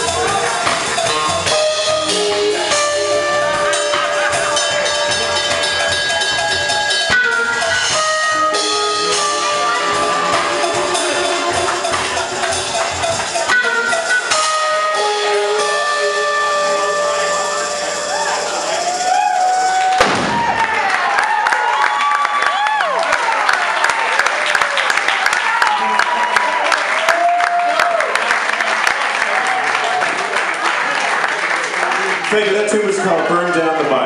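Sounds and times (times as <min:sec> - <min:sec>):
audience applause and cheering: 0:00.0 - 0:34.0
jazz band final chord: 0:00.1 - 0:19.0.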